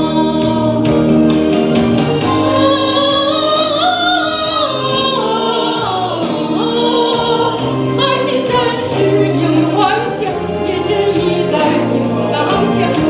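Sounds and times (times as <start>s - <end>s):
woman singing with vibrato: 0.0s - 1.2s, 2.2s - 13.0s
instrumental accompaniment: 0.0s - 13.0s.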